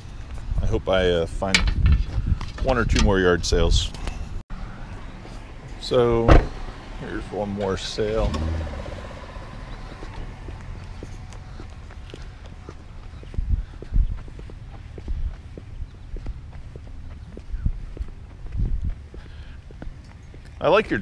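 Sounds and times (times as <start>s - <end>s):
low rumble on microphone: 8.3s - 20.0s
footsteps on concrete: 9.7s - 21.0s.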